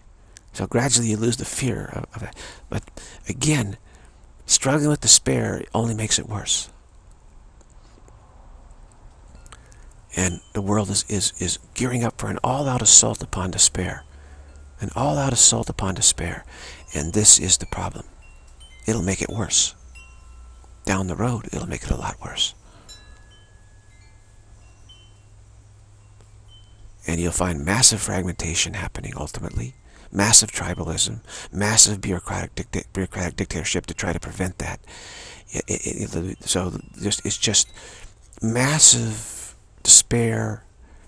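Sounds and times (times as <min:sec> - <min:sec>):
faint hum and hiss: 0:00.0 - 0:41.0
faint ticks: 0:00.3 - 0:00.6, 0:06.7 - 0:10.1
faint high chime tones: 0:09.3 - 0:32.0, 0:34.6 - 0:41.0.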